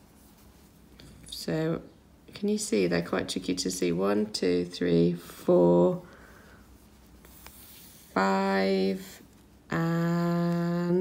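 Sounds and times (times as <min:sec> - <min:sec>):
rustling of yarn and fingers: 0:00.0 - 0:11.0.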